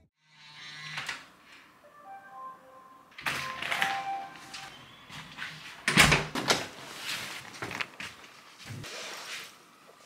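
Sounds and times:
door being unlocked and opened: 3.2 - 4.2, 5.9 - 6.6.

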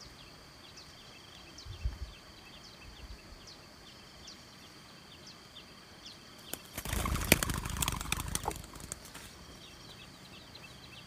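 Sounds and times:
wings flapping: 6.5 - 9.4.

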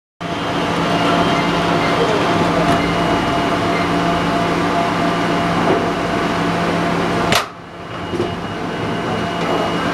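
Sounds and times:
steady machine hum: 0.2 - 9.9.

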